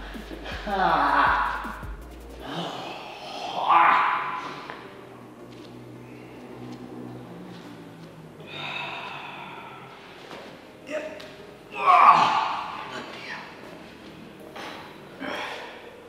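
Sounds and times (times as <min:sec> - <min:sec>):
man groaning and gasping: 0:00.0 - 0:01.7, 0:02.4 - 0:03.3
faint background music: 0:00.0 - 0:16.0.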